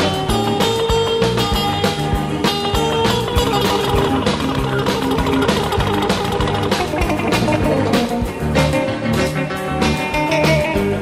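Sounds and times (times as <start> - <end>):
steady drum beat: 0.0 - 8.5
band music with guitar: 0.0 - 11.0.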